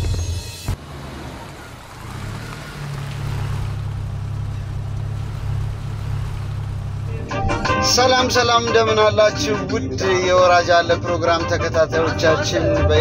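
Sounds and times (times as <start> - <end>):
music: 0.0 - 0.7, 7.1 - 13.0
car engine running: 0.0 - 9.1.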